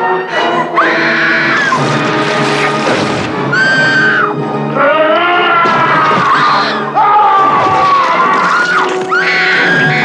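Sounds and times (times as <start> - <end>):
horror film music: 0.0 - 10.0.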